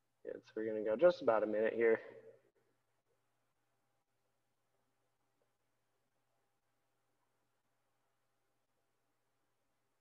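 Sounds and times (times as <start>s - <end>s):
faint steady hum: 0.0s - 10.0s
man's voice: 0.3s - 2.3s.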